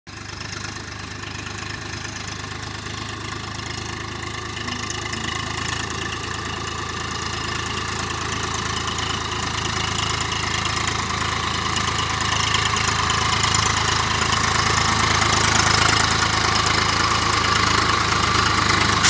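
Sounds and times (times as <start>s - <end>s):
tractor diesel engine running: 0.1s - 19.0s.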